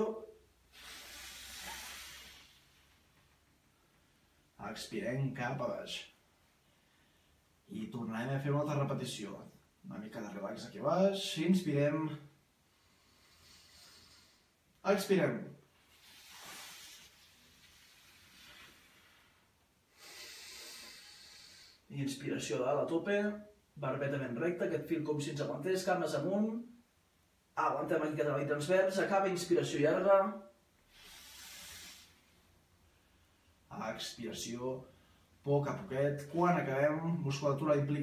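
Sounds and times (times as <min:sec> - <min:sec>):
man breathing out: 0:00.7 - 0:02.9, 0:16.0 - 0:21.9, 0:30.9 - 0:32.2.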